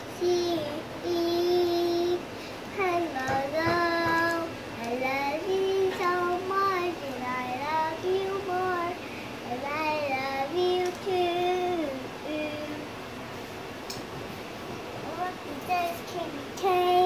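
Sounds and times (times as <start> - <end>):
girl singing: 0.0 - 13.0, 15.0 - 17.0.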